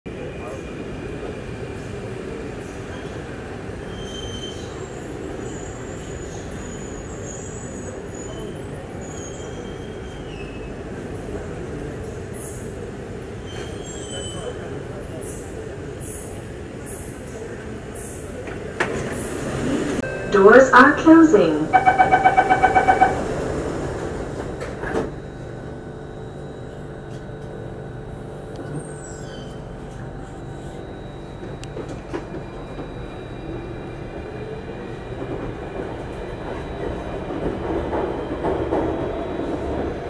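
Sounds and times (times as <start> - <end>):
high wheel squeals: 3.9 - 10.7, 21.7 - 23.5
train rumble: 7.7 - 40.0
train doors opening: 13.2 - 15.4, 17.3 - 25.8.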